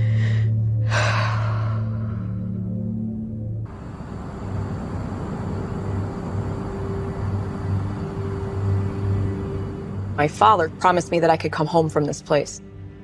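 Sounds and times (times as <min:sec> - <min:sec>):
low pulsing tone: 0:00.0 - 0:11.4
background hiss: 0:03.7 - 0:10.2.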